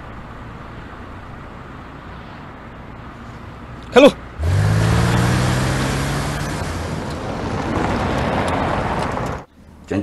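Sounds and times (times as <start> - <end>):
road noise: 0.0 - 10.0
car engine pulling away: 4.4 - 9.5.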